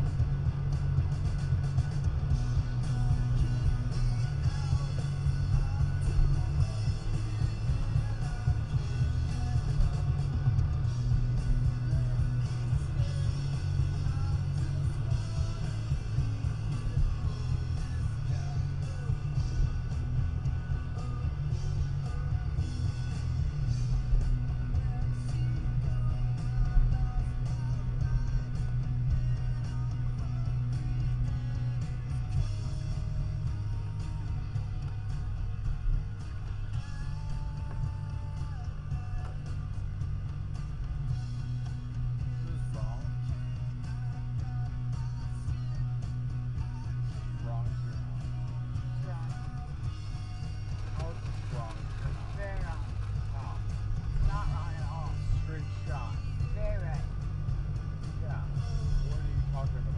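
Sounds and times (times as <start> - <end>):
road and engine drone: 0.0 - 43.9
rock music on car speakers: 0.0 - 59.9.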